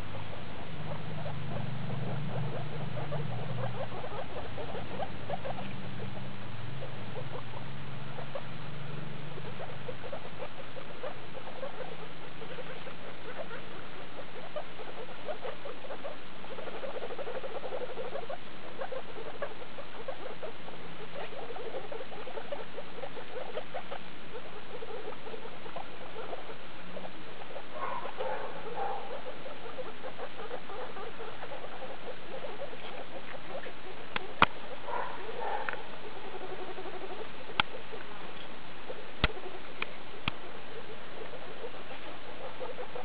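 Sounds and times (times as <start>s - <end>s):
guinea pigs pulsing calls: 0.0s - 43.0s.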